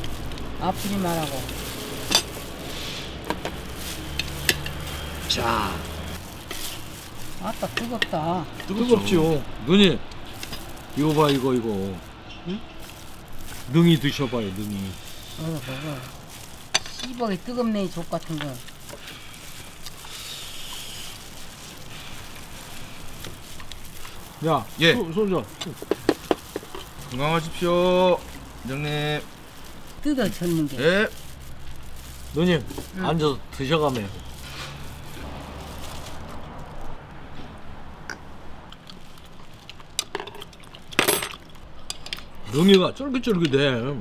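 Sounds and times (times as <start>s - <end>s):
plastic gloves crinkling: 0.0s - 43.8s
outdoor background noise: 0.0s - 44.0s.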